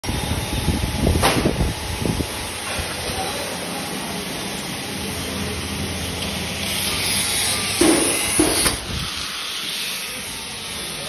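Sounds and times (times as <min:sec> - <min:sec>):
electric motor running: 0:04.4 - 0:11.0.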